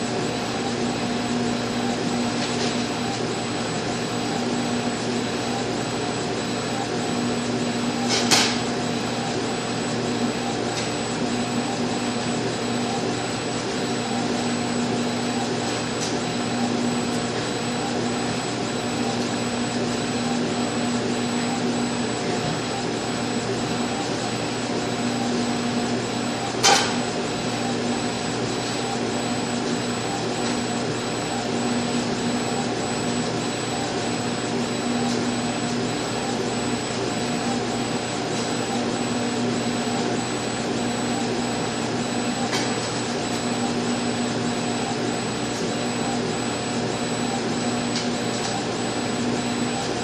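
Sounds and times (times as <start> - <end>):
laser engraver whirring: 0.0 - 50.0.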